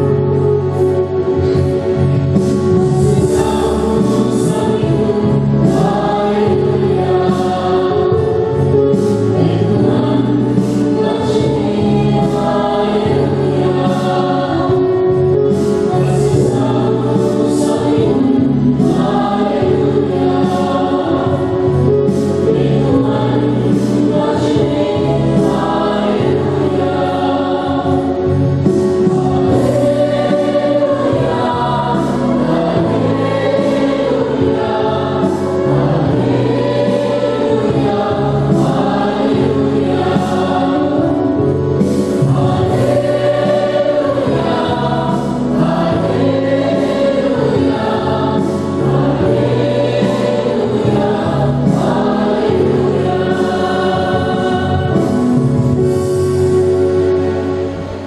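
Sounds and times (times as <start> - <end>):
choir singing a hymn: 0.0 - 58.0
instrumental accompaniment: 0.0 - 58.0.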